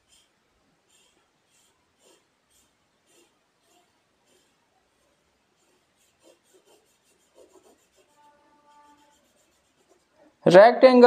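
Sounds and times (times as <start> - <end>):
marker pen scratching on paper: 0.0 - 10.2.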